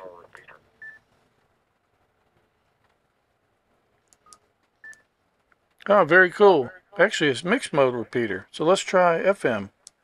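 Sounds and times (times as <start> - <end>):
faint clicks: 4.0 - 5.9.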